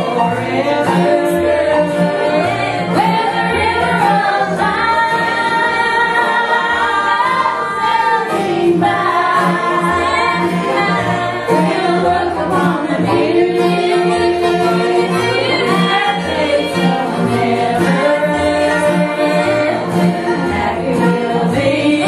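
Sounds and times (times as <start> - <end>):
repeating bass line: 0.0 - 22.0
voices singing in harmony: 0.0 - 22.0.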